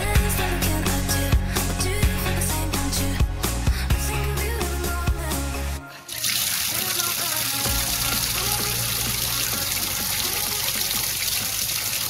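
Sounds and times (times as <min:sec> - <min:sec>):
water spraying from tap: 0:06.1 - 0:12.0.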